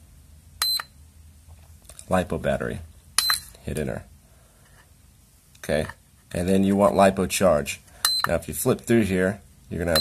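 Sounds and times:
high-pitched charger beep: 0.6 - 0.9, 8.0 - 8.3.

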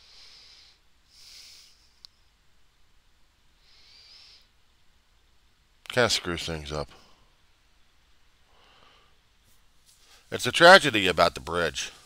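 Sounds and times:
faint breath into microphone: 0.0 - 2.0, 8.5 - 9.3, 9.9 - 10.3.

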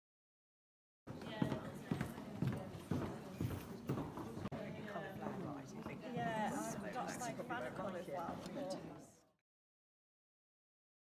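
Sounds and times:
footsteps on wooden floor: 1.2 - 4.8.

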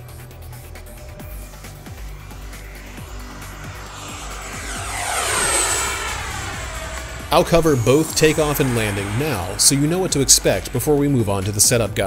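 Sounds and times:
model jet fly-by whine: 0.9 - 12.0.

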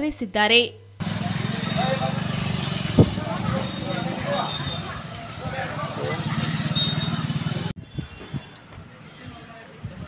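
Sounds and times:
voices: 0.0 - 7.8
motorcycle engine running: 1.0 - 7.8.

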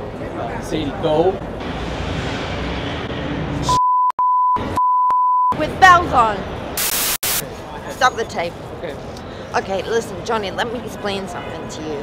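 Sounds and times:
outdoor background noise: 0.0 - 3.8, 5.5 - 12.0
high electronic beep tone: 3.7 - 5.6
short burst of noise: 6.8 - 7.4.

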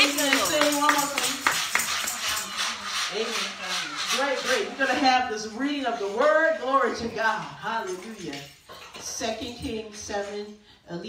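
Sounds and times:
tambourine shaken: 0.0 - 3.4.

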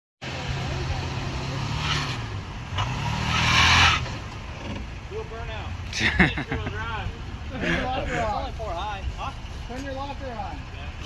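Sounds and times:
truck engine revving: 0.3 - 4.8
voices: 4.3 - 11.0.

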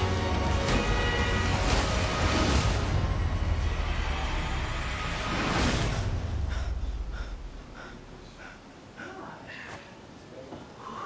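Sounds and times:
trailer music: 0.0 - 8.2
heavy low rumble: 1.4 - 9.0.

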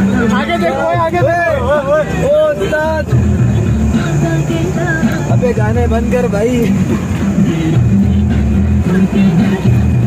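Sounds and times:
passengers calling out: 0.0 - 10.0
vehicle engine rumbling on rough track: 0.0 - 10.0.

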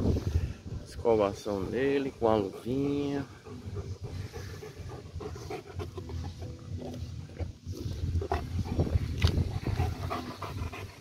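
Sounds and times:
grooming glove rubbing fur: 1.9 - 11.0
dog panting: 2.0 - 11.0.

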